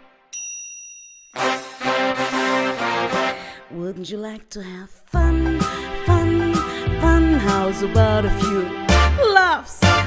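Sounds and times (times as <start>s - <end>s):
high bell-like ding: 0.3s - 1.6s
band backing music: 1.4s - 3.5s, 5.5s - 10.0s.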